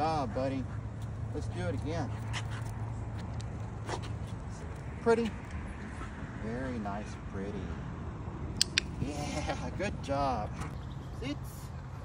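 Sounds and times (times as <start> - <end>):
shoes and paws on concrete: 0.0 - 7.8.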